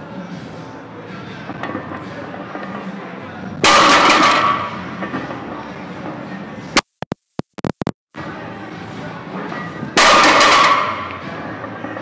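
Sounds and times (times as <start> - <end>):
barbell crashing on floor: 3.6 - 4.8, 10.0 - 11.1.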